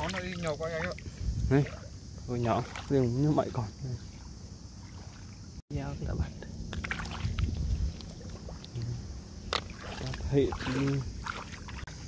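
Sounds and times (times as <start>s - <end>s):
water sloshing and splashing: 0.0s - 5.6s, 6.6s - 12.0s.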